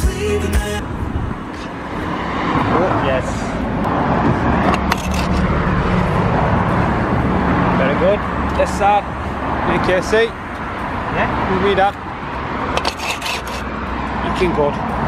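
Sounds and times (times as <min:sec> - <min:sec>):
road traffic noise: 0:00.0 - 0:15.0.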